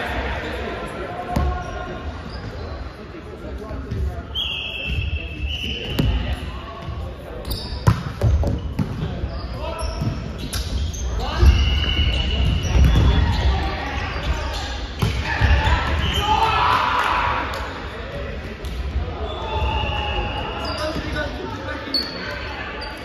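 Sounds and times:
shoes squeaking on wooden court: 0:01.4 - 0:03.0, 0:06.8 - 0:16.2, 0:20.4 - 0:23.0.

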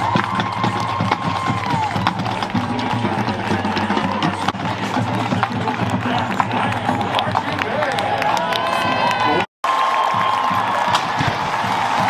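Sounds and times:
marching band playing: 0:00.0 - 0:12.0
stadium crowd chatter: 0:00.0 - 0:12.0.

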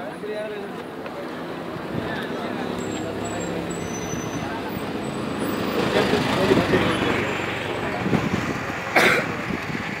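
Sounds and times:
murmur of distant voices: 0:00.0 - 0:10.0
traffic noise: 0:00.0 - 0:10.0.

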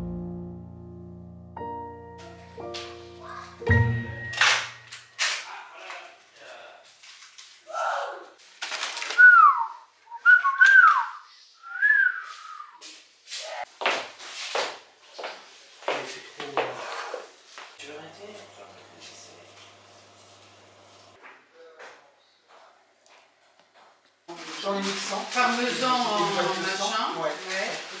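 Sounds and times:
wrapping rustling: 0:06.2 - 0:07.7, 0:08.4 - 0:09.7, 0:24.3 - 0:28.0
whistle-like sliding pitches: 0:09.2 - 0:12.8.

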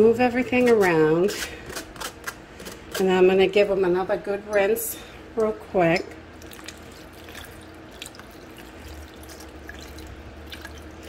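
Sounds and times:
water dripping: 0:06.4 - 0:11.0
water trickling through strainer: 0:06.4 - 0:11.0.

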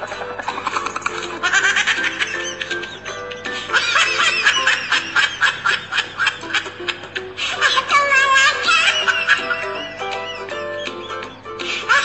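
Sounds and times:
high-pitched giggling laughter: 0:00.0 - 0:12.0.

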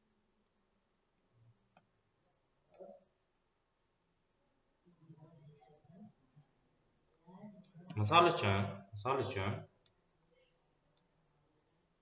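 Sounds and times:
computer mouse clicks: 0:03.8 - 0:04.0.

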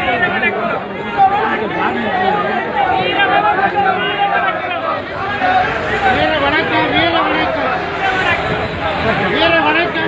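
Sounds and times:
crowd babble of voices: 0:00.0 - 0:10.0.

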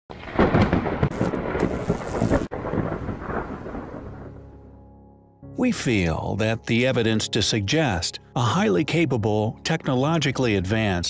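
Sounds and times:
thunder rumbling and crackling: 0:00.1 - 0:04.5.

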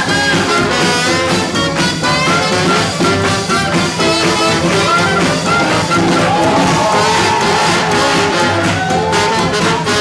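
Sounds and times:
swing jazz band playing: 0:00.0 - 0:10.0.

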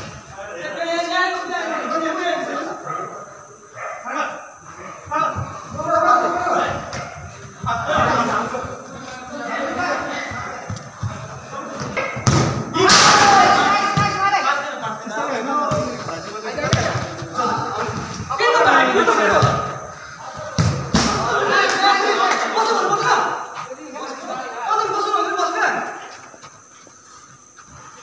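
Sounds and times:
players calling and shouting: 0:00.0 - 0:27.8
ball being kicked thuds: 0:12.0 - 0:13.1.

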